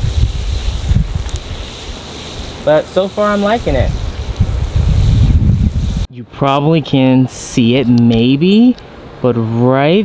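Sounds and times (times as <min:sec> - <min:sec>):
wind buffeting microphone: 0:00.0 - 0:02.6, 0:03.3 - 0:06.1.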